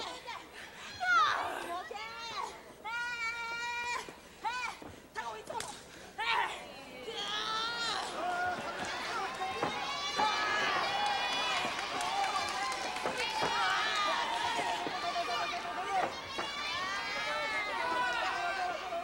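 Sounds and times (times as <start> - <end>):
crowd shouting and cheering: 6.2 - 19.0.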